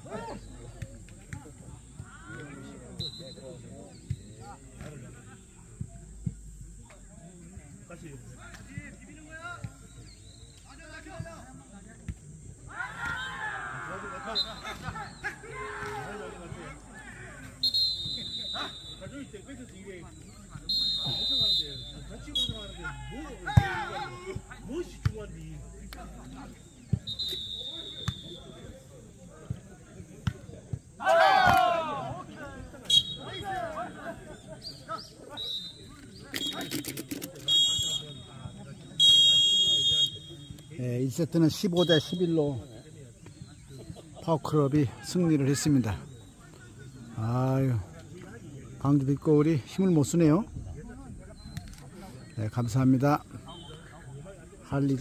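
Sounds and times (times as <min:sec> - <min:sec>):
players calling out: 0:12.1 - 0:50.3, 0:51.4 - 0:55.0
short high whistle blasts: 0:17.6 - 0:19.1, 0:20.7 - 0:22.7, 0:27.1 - 0:28.4, 0:36.4 - 0:38.3, 0:39.0 - 0:40.6.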